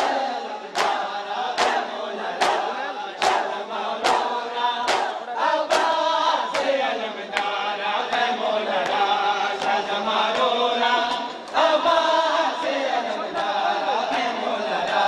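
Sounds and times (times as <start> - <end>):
crowd chanting a lament: 0.0 - 15.0
rhythmic chest-beating strikes: 0.0 - 15.0.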